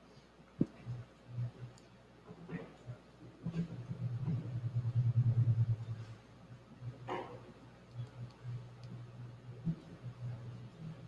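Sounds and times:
low fluttering rumble: 3.4s - 6.2s.

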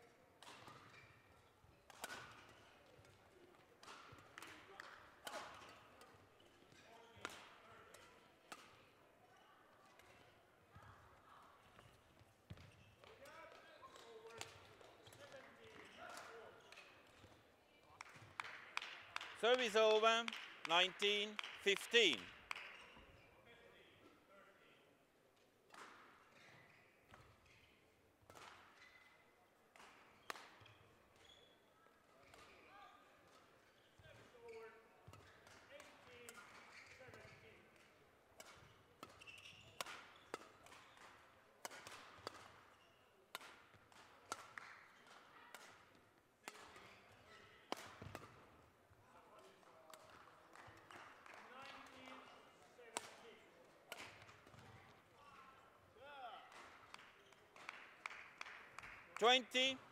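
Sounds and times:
shoes squeaking on floor: 39.2s - 39.8s.

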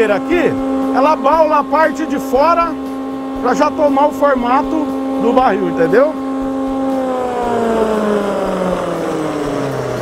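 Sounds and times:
machine humming and winding down: 0.0s - 10.0s.

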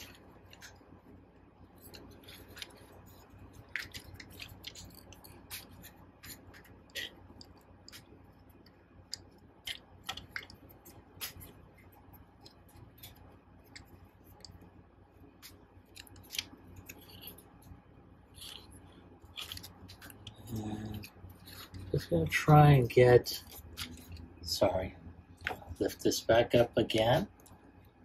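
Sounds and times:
plastic pieces clicking and rattling: 1.8s - 8.1s.

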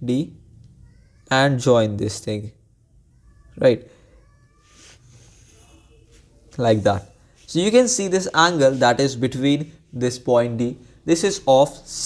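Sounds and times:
faint thin tones: 3.1s - 7.7s.

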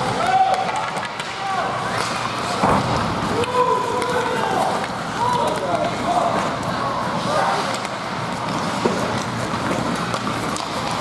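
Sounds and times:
players and spectators shouting: 0.0s - 2.6s, 3.2s - 6.5s
sticks and puck clicking on ice: 0.1s - 2.4s, 7.6s - 11.0s.

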